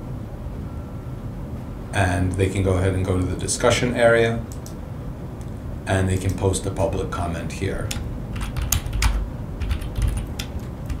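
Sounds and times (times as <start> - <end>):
computer keyboard typing: 7.8 - 11.0.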